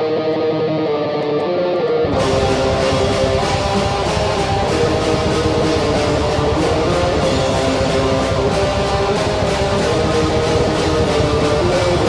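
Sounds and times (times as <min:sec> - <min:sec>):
death metal music: 0:00.0 - 0:12.0.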